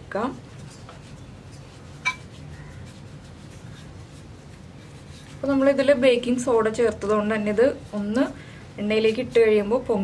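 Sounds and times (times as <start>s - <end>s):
hands shaping dough on stone: 0.6s - 10.0s.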